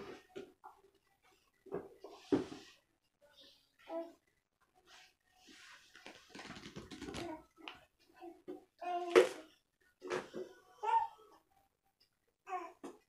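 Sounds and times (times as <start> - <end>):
playing cards rustling and clicking: 5.9 - 7.8.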